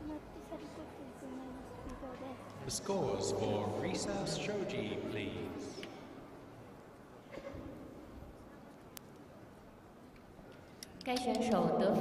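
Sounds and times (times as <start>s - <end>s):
woman speaking: 11.1s - 12.0s.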